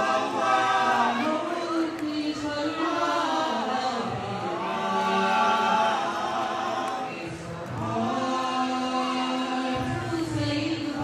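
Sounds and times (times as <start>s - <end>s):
a cappella group singing harmony: 0.0s - 11.0s.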